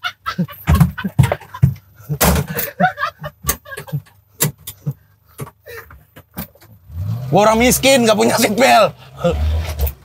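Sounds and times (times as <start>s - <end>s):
faint laughter: 0.0s - 4.2s
sharp clicks and knocks: 3.4s - 6.8s.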